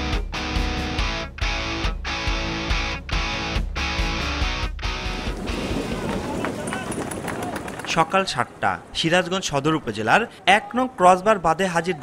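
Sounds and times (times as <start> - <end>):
men talking and calling: 5.1 - 12.0.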